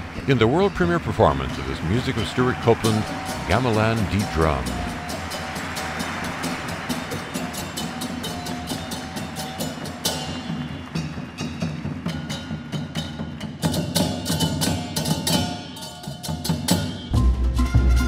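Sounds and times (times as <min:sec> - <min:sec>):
hand drums: 0:03.0 - 0:18.0.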